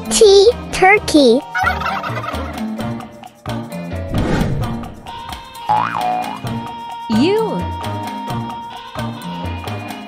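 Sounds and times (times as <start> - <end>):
children's music with steady beat: 0.0 - 4.1, 4.9 - 10.0
turkey gobbling: 1.6 - 2.6
falling sweep: 4.1 - 5.6.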